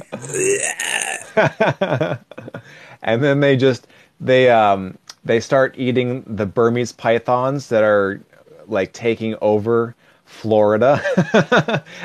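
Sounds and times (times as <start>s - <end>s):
man laughing: 0.0s - 2.7s, 11.0s - 12.0s.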